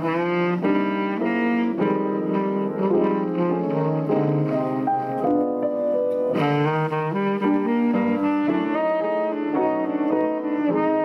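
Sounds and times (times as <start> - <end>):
piano accompaniment: 0.0 - 11.0
tenor saxophone jazz melody: 0.0 - 11.0.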